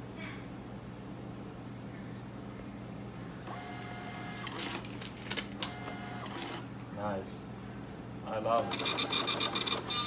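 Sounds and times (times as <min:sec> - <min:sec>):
receipt printer motor whine: 0:03.5 - 0:04.8, 0:05.6 - 0:06.6, 0:08.6 - 0:10.0
printer sharp clicks: 0:08.6 - 0:10.0.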